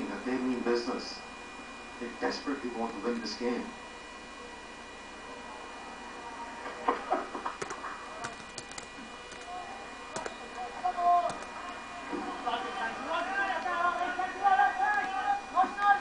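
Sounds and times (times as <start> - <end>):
steady electrical hum: 0.0 - 16.0
computer keyboard keys clicking: 7.6 - 9.5, 10.2 - 10.6, 11.2 - 11.5.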